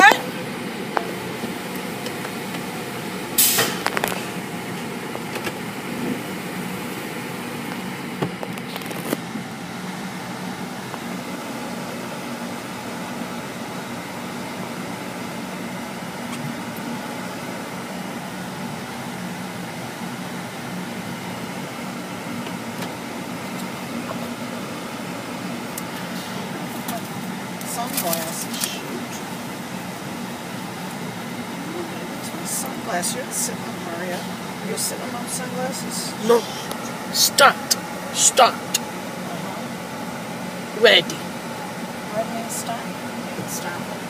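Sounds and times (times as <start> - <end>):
car wash machinery humming: 0.0 - 44.0.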